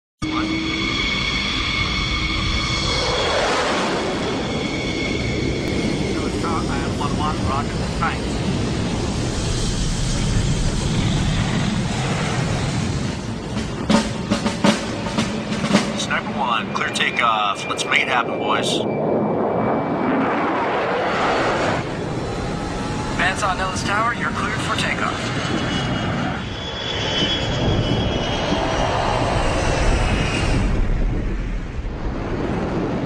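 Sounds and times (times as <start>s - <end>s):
jet engines running: 0.2s - 33.0s.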